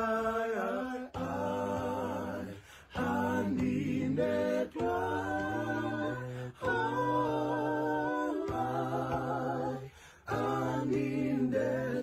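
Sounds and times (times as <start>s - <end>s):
unaccompanied choir singing: 0.0s - 12.0s.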